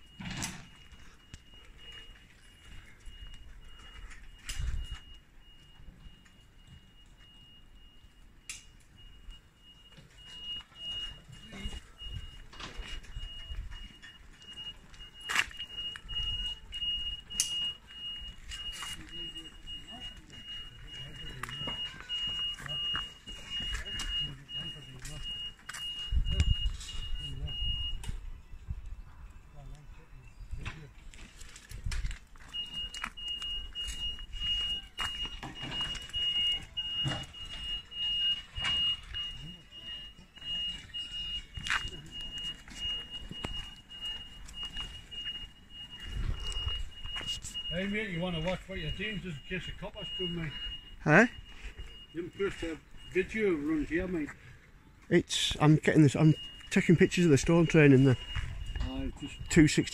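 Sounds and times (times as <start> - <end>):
high-pitched electronic alarm: 0.0 - 59.9.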